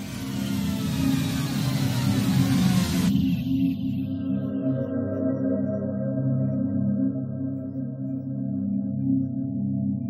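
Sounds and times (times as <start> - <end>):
low droning synth pad: 0.0 - 10.0.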